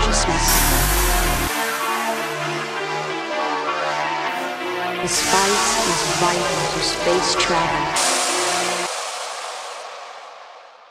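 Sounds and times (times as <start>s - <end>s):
low held synth note: 0.0s - 1.6s.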